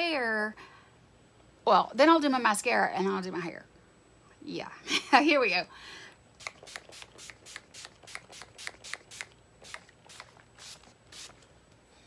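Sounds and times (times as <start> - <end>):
spray bottle hissing: 6.4 - 11.4.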